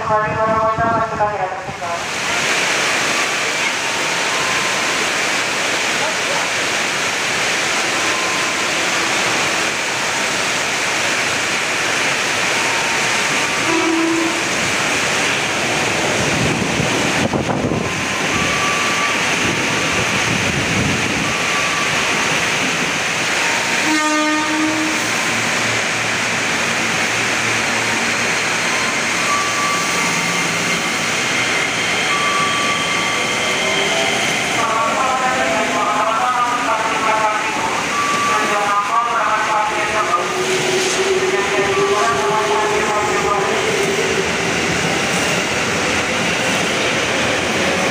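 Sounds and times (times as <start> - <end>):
train wheels rushing on rails: 1.7 - 47.9.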